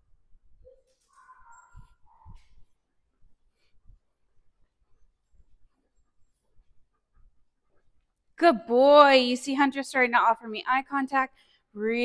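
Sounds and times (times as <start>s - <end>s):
dog whining: 0.7s - 2.5s.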